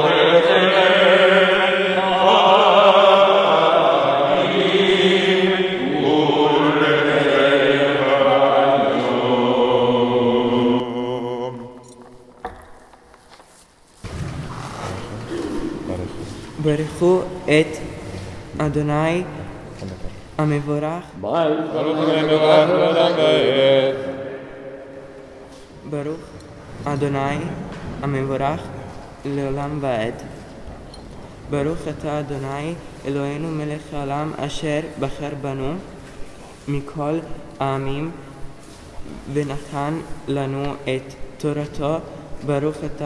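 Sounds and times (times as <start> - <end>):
men chanting together: 0.0 - 11.9, 21.2 - 25.2.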